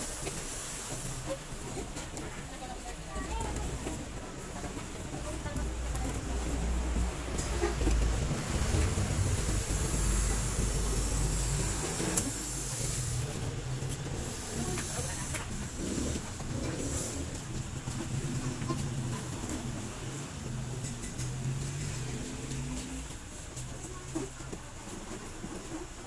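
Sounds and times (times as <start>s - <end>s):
steady hiss: 0.0s - 2.5s, 8.2s - 19.0s
low rumble: 5.5s - 12.2s.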